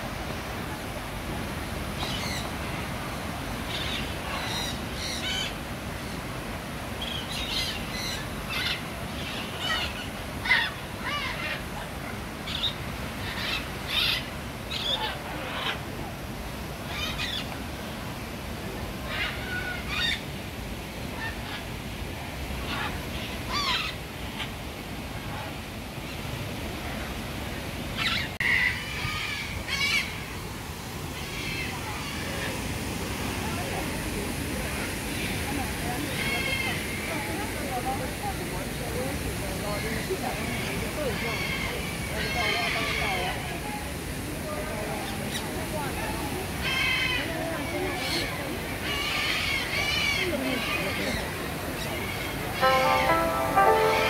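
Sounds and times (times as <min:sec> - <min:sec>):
steady background hiss: 0:00.0 - 0:54.0.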